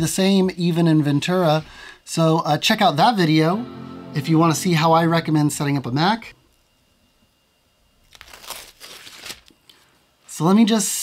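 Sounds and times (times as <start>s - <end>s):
packaging crinkling and rustling: 8.0s - 9.8s.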